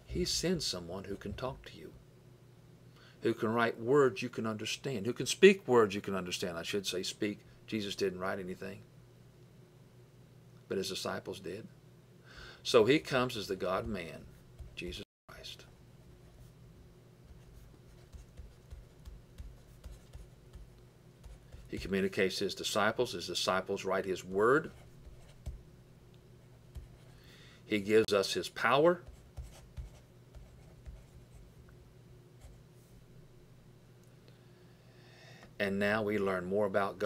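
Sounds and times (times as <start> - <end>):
low steady hum: 0.0 - 37.0
stylus scratching on tablet: 17.3 - 22.0, 24.2 - 25.6, 26.4 - 27.2, 29.0 - 31.5.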